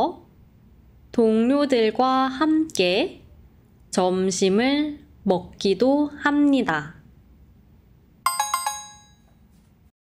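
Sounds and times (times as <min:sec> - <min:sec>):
bright chime: 0:08.3 - 0:09.5.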